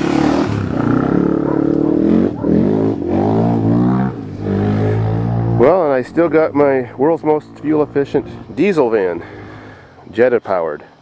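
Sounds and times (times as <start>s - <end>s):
car engine revving: 0.0s - 10.1s.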